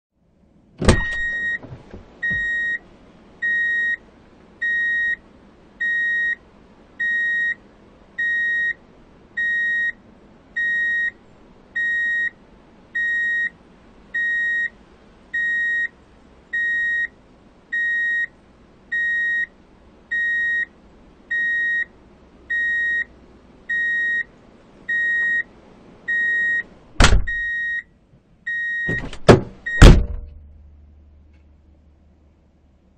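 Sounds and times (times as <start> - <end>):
loud thump: 0.8 - 2.5, 27.0 - 27.4, 28.9 - 30.5
vehicle reversing beeper: 1.0 - 2.8, 3.4 - 4.0, 4.6 - 5.2, 5.8 - 6.4, 7.0 - 7.6, 8.2 - 8.8, 9.4 - 10.0, 10.6 - 11.2, 11.8 - 12.3, 13.0 - 13.5, 14.2 - 14.7, 15.4 - 15.9, 16.6 - 17.1, 17.8 - 18.3, 19.0 - 19.5, 20.1 - 20.7, 21.3 - 21.9, 22.5 - 23.1, 23.7 - 24.3, 24.9 - 25.5, 26.1 - 26.7, 27.3 - 27.9, 28.5 - 29.1
sharp knock: 28.9 - 30.4.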